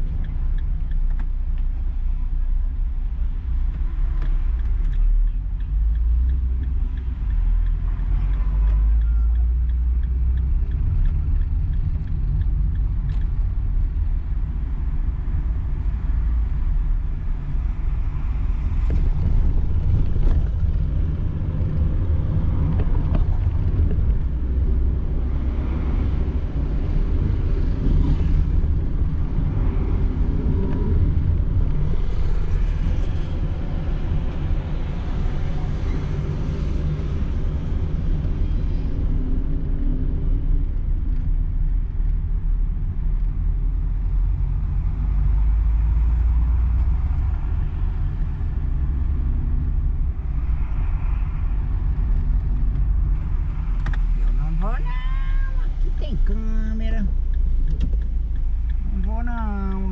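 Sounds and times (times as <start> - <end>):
car engine and tyre rumble: 0.0 - 59.9.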